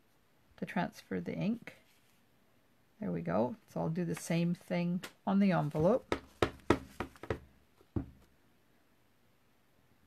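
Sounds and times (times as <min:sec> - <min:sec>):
light taps and knocks: 0:05.8 - 0:08.3.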